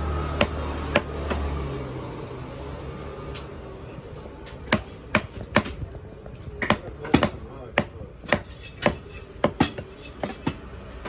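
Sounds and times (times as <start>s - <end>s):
knife chopping on wooden block: 4.6s - 5.8s, 6.6s - 10.6s.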